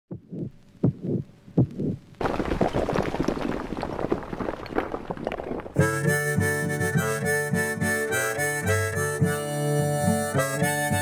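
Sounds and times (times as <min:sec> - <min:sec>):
heartbeat double pulse: 0:00.1 - 0:02.0.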